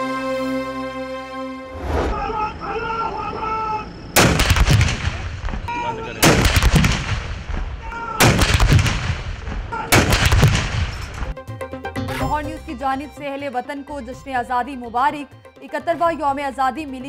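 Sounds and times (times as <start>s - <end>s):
artillery guns firing: 4.2s - 11.4s.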